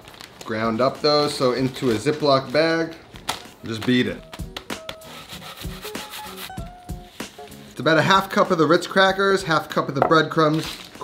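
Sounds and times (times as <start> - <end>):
background music with plucked notes: 3.2 - 11.0.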